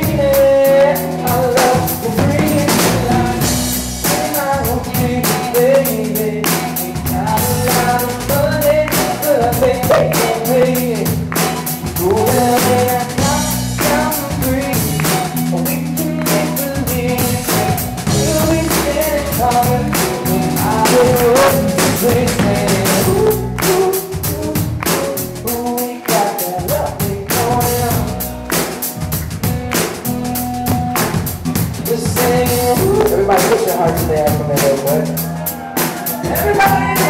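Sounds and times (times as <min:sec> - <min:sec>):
strummed acoustic guitar: 0:00.0 - 0:24.2
man singing: 0:00.0 - 0:28.9, 0:30.1 - 0:37.0
drum kit beat: 0:00.0 - 0:37.0
electric guitar: 0:00.0 - 0:37.0.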